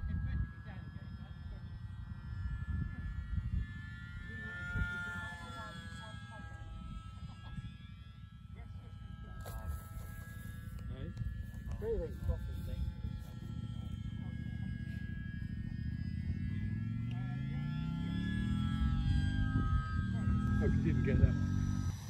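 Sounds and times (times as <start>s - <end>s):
wind buffeting microphone: 1.8s - 5.4s.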